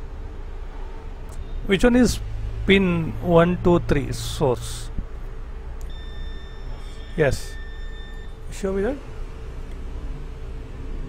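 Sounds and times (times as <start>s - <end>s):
low steady hum: 0.0s - 11.0s
multimeter beep: 5.9s - 8.5s.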